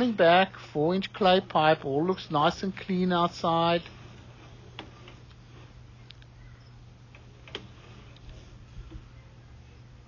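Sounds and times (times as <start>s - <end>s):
faint irregular clicks: 4.7s - 9.0s.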